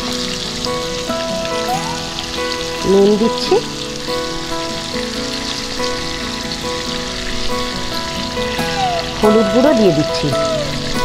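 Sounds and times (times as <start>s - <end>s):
background music of held notes: 0.0s - 11.0s
potatoes sizzling in oil: 0.0s - 11.0s.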